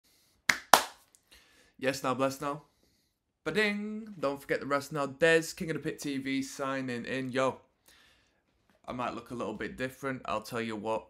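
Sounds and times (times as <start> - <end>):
hands snapping: 0.5 - 1.1.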